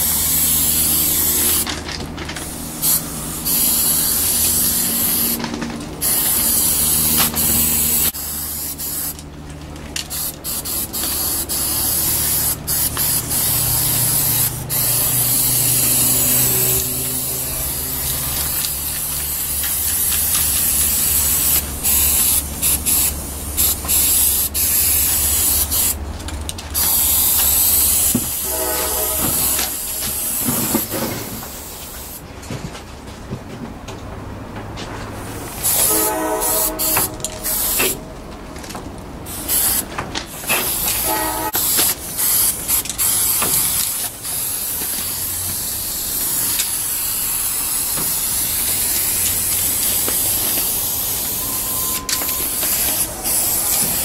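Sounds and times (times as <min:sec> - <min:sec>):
spray paint cans hissing: 0:00.0 - 0:32.3, 0:35.2 - 0:54.0.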